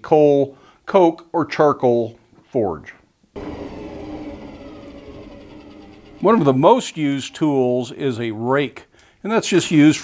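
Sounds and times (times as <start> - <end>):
faint blower motor whine: 3.4 - 8.4
forge air rushing: 3.4 - 8.5.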